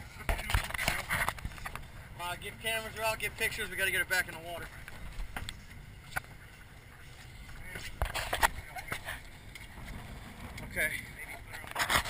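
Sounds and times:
boat noise: 0.0s - 12.0s
wind rumble: 8.0s - 11.9s.

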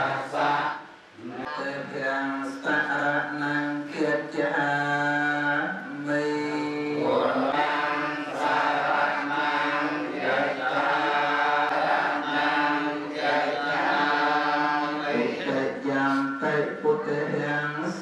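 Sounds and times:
monks chanting: 0.0s - 18.0s.

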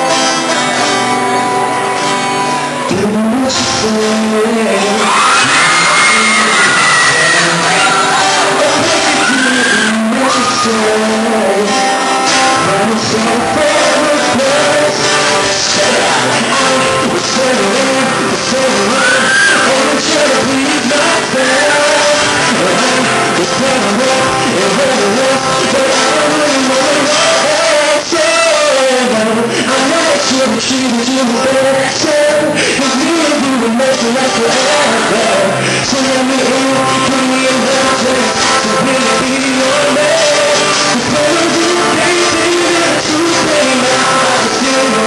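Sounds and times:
strummed acoustic guitar: 0.0s - 45.0s
man singing into a microphone: 2.4s - 45.0s.

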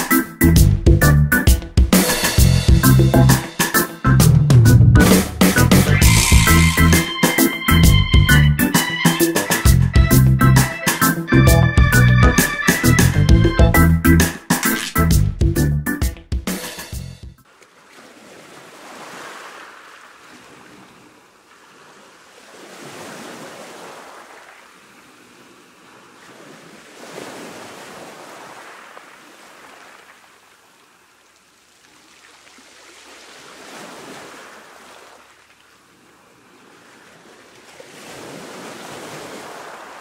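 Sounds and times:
waves breaking on sandy beach: 17.4s - 40.0s.

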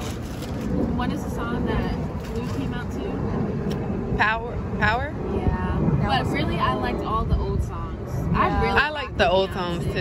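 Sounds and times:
low background rumble: 0.0s - 10.0s
women talking: 0.9s - 3.5s, 5.3s - 10.0s.

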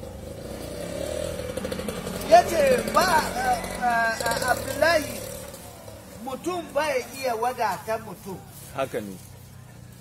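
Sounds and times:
small engine droning: 0.0s - 6.4s.

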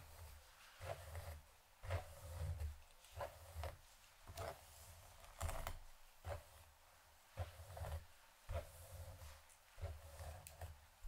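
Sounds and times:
comb rustling through hair: 7.3s - 10.9s.

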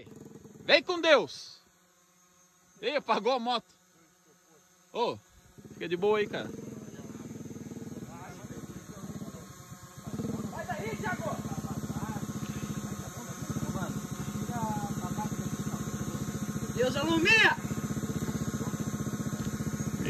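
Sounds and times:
motorbike engine running: 0.0s - 3.5s, 4.6s - 20.0s.

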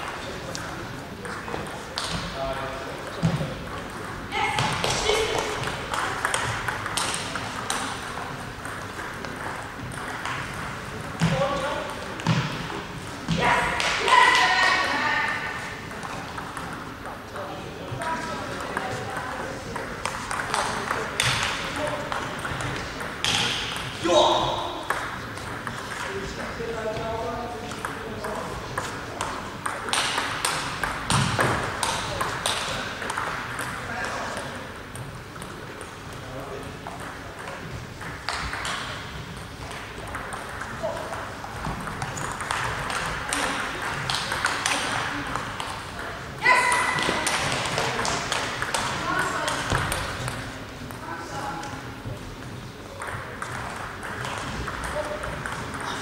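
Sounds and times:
murmur of voices: 0.0s - 56.0s
table tennis ball clicking: 36.9s - 46.1s.

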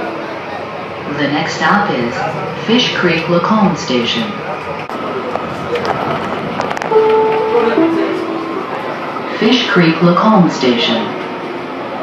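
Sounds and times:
moving train noise: 0.0s - 12.0s
two-note electronic chime: 6.9s - 9.4s.

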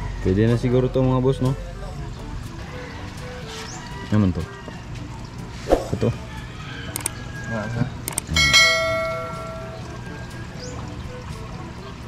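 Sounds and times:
notification bell chime: 8.3s - 10.0s.

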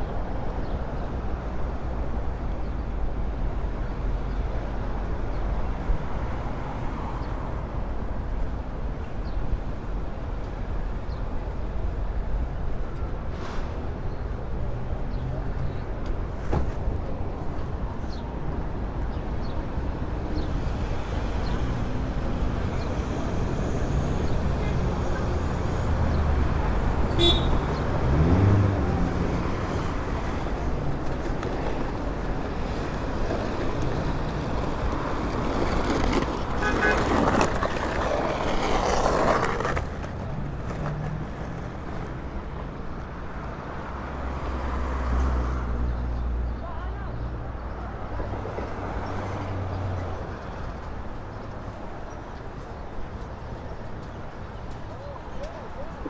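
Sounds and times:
cars and vans passing: 0.0s - 56.0s.

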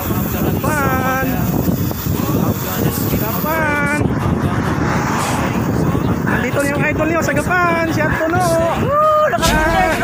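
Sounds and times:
highway traffic noise: 0.0s - 10.0s
wind rushing over microphone: 0.0s - 10.0s.

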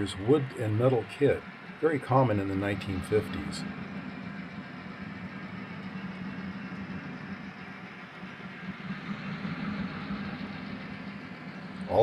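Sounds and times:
model train rolling rumble: 0.0s - 12.0s.

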